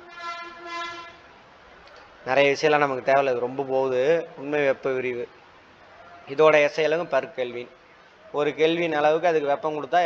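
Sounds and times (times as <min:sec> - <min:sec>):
high-pitched horn-like tone: 0:00.0 - 0:01.3.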